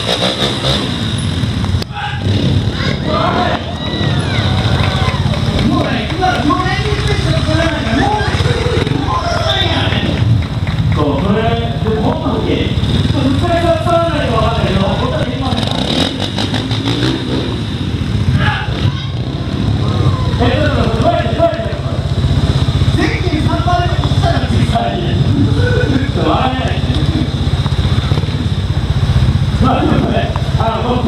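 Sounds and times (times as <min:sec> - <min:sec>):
motorcycle engines rumbling: 0:00.0 - 0:31.0
announcer speaking: 0:01.9 - 0:03.8, 0:05.6 - 0:10.2, 0:10.9 - 0:16.0, 0:20.2 - 0:22.1, 0:22.8 - 0:27.4, 0:29.5 - 0:31.0.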